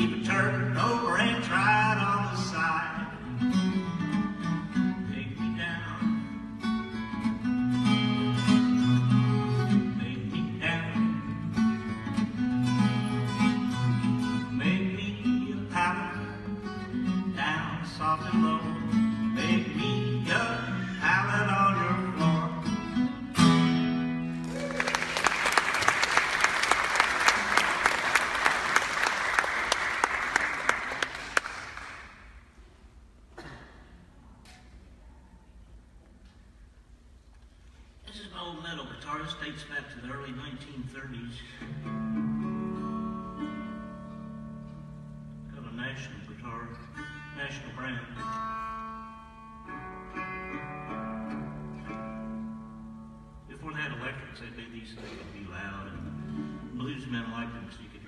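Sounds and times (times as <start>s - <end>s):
acoustic guitar plucked tune: 0.0s - 24.5s, 41.6s - 54.2s, 55.3s - 57.9s
audience applause: 24.4s - 32.2s.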